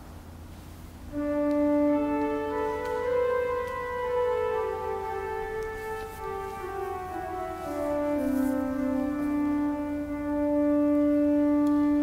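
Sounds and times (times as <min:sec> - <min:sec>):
organ holding a note: 0:01.1 - 0:12.0.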